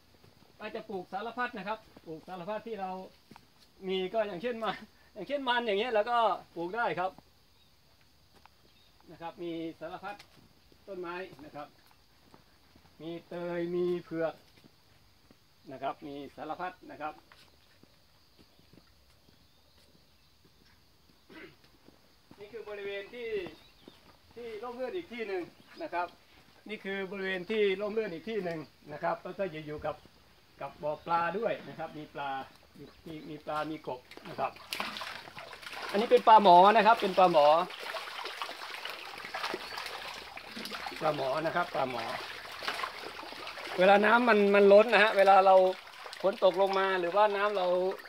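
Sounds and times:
fish splashing at water surface: 34.4s - 48.0s.

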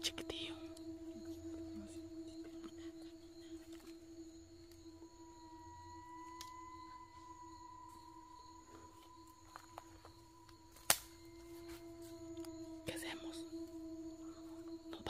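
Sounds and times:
higher ringing tone: 0.0s - 15.0s
low ringing tone: 0.0s - 15.0s.

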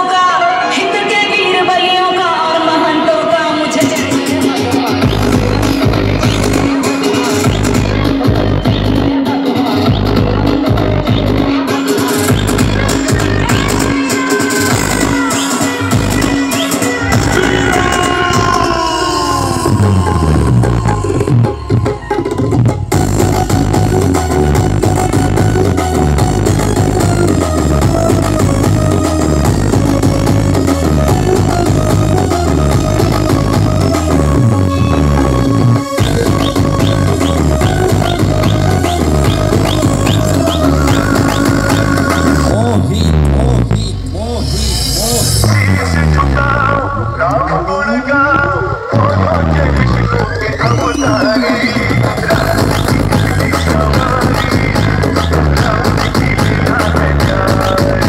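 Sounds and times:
electronic dance music: 0.0s - 58.0s.

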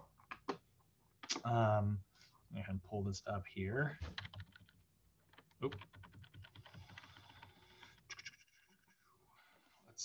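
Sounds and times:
keyboard and mouse clicking: 1.2s - 1.5s.

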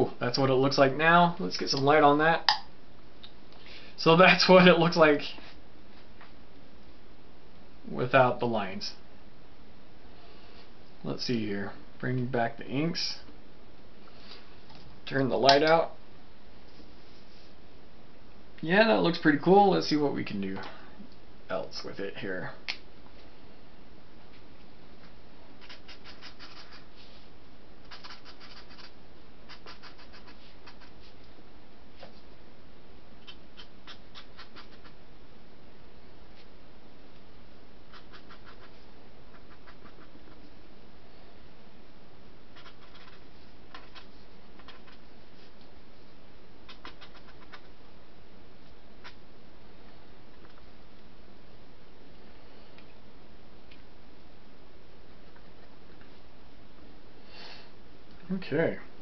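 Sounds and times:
steady hiss: 23.2s - 51.6s
pen scratching on paper: 25.6s - 26.9s, 27.9s - 31.0s, 33.6s - 35.0s, 37.9s - 40.4s, 42.6s - 45.0s, 46.7s - 47.7s
faint hiss: 56.0s - 59.0s.

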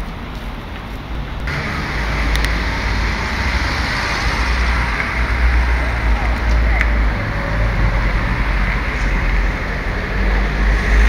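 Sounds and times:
low traffic rumble: 0.0s - 11.0s
passing cars hiss: 1.0s - 11.0s.

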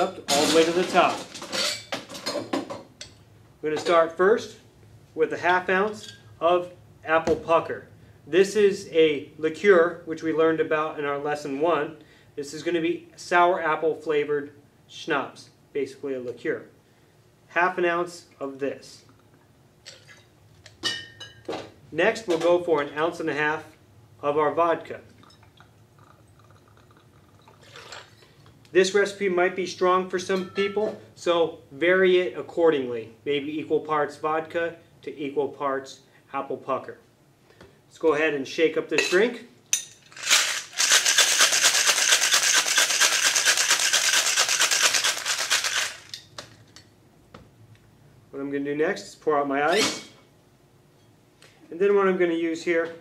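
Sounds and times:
metal clinking on glass: 1.5s - 2.4s
ice rattling in cocktail shaker: 25.2s - 28.3s, 40.0s - 46.6s.

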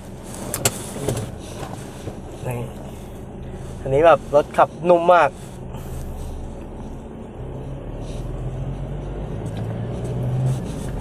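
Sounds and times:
diesel engine drone: 0.0s - 11.0s
road noise: 0.0s - 11.0s.

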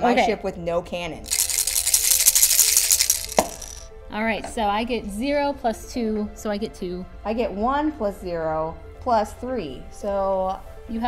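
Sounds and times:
small balls rattling in plastic pieces: 1.2s - 3.9s.

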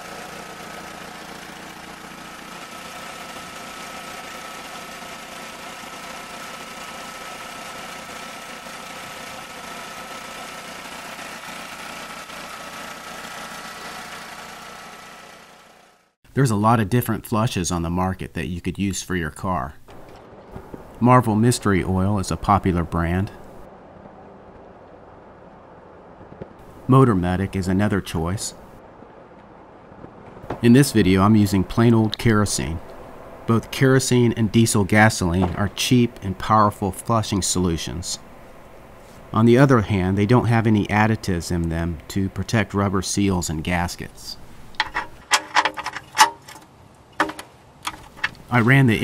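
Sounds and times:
low background rumble: 19.8s - 37.3s
faint hum: 30.5s - 45.2s
sharp metallic clicks: 44.7s - 48.4s.

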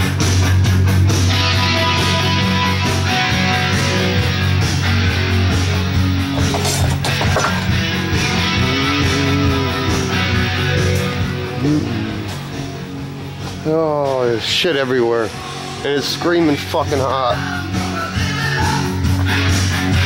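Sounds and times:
guitar-led music with bass and drums: 0.0s - 20.0s.

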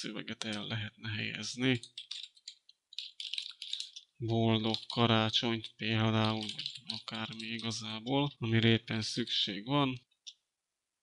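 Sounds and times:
keyboard keys clicking: 1.8s - 5.0s, 5.6s - 7.8s.

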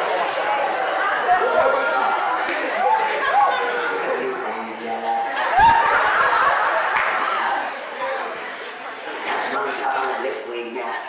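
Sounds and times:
people laughing: 0.0s - 9.7s
man speaking through microphone: 4.0s - 5.4s, 9.5s - 11.0s.

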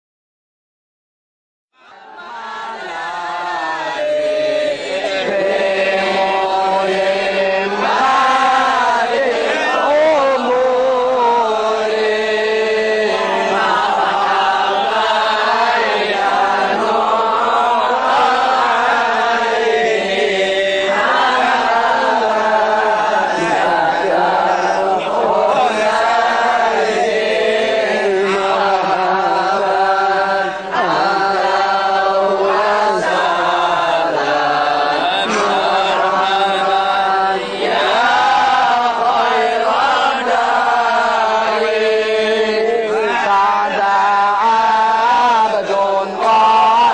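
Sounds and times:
men chanting in unison: 1.8s - 46.9s.

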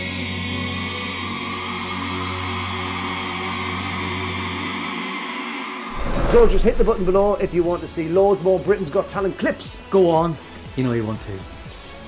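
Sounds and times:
male vocal group harmony: 0.0s - 5.9s
deep bass note: 6.0s - 7.9s.

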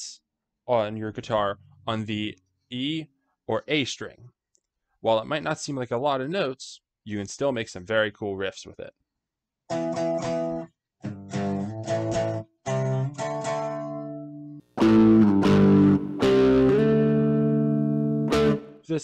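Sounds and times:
electric guitar power chords: 9.7s - 18.9s.

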